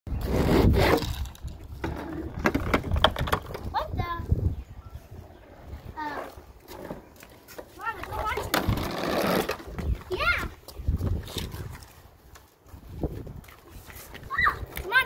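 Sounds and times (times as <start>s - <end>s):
rustling noise: 0.1s - 15.0s
small child babbling and squealing: 14.3s - 15.0s.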